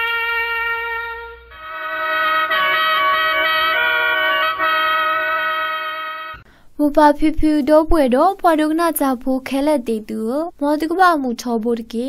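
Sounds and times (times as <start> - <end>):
sustained chord intro music: 0.0 - 6.4.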